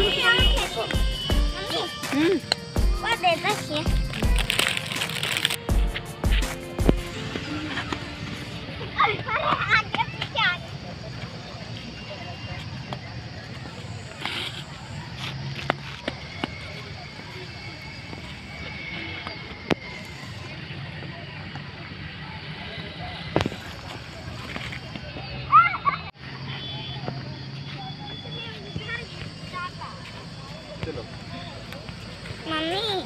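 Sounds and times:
distant voices: 0:07.1 - 0:33.0.

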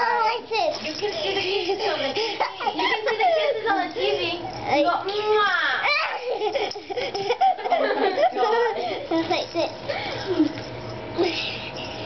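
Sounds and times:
child squealing: 0:05.8 - 0:06.2.

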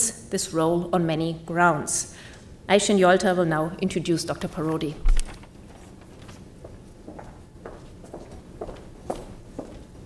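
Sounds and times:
footsteps on a stage: 0:05.6 - 0:10.0.

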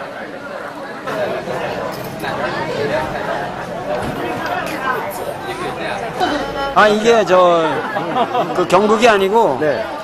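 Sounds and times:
people chatting: 0:00.0 - 0:10.0.

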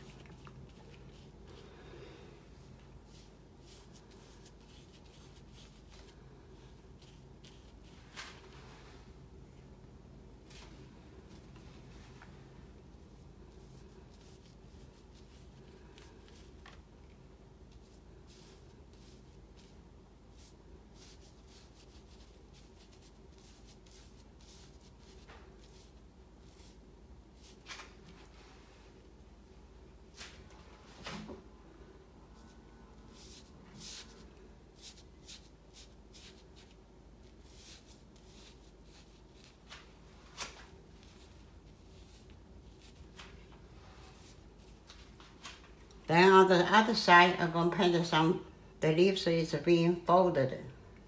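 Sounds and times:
brush swishing across paper: 0:00.0 - 0:01.7, 0:02.5 - 0:09.6, 0:10.5 - 0:16.8, 0:17.6 - 0:29.0, 0:32.3 - 0:45.6
low steady hum: 0:00.0 - 0:51.0.

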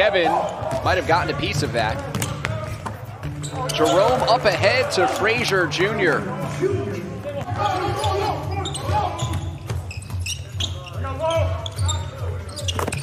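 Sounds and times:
players calling out: 0:00.0 - 0:13.0.

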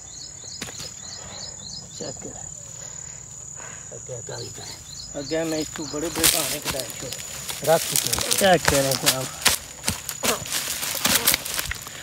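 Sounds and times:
insect chirps: 0:00.0 - 0:12.0
insects droning: 0:00.0 - 0:12.0.

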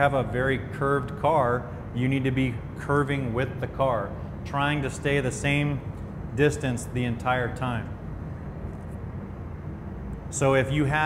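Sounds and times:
ventilation fans rumbling: 0:00.0 - 0:11.0.

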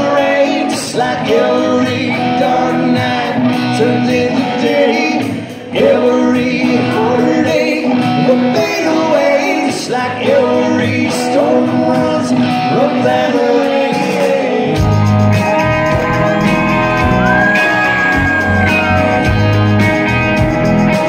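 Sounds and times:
man singing: 0:00.0 - 0:19.3
live country-rock band: 0:00.0 - 0:21.0.

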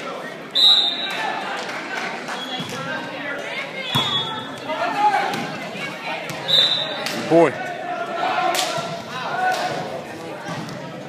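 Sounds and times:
voices echoing in gym: 0:00.0 - 0:11.0
referee whistle blast: 0:00.5 - 0:01.2, 0:06.5 - 0:07.0
shoe squeal: 0:06.5 - 0:07.0.

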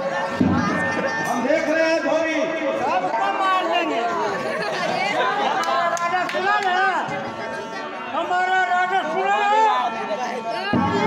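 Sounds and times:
men speaking loudly on stage: 0:00.0 - 0:11.0
overlapping chatter: 0:00.0 - 0:11.0.

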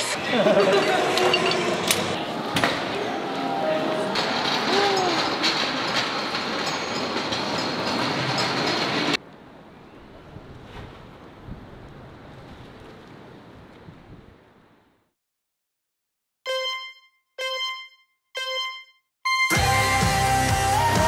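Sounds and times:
loud steady background noise: 0:00.0 - 0:10.4.

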